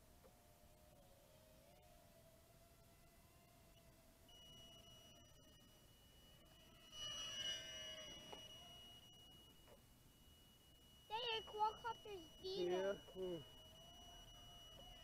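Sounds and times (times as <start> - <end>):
drone motors whining: 0.2 - 15.0
faint high buzzer tone: 0.4 - 15.0.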